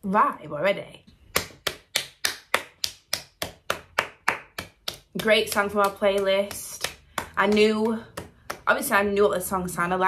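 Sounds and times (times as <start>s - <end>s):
person clapping hands: 1.3s - 8.7s.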